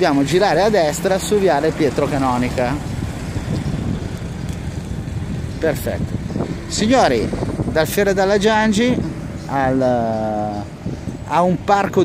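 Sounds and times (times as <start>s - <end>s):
scooter rumbling over asphalt: 0.0s - 9.9s
wind buffeting microphone: 0.0s - 12.0s.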